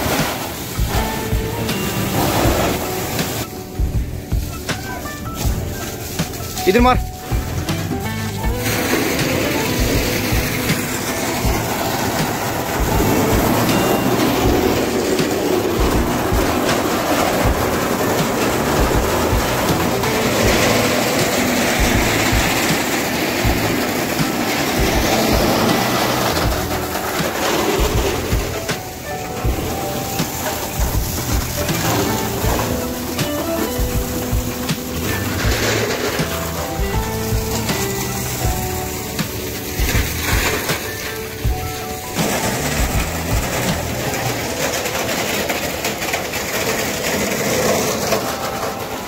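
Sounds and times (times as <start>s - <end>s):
fire hose water jet rushing: 0.0s - 49.0s.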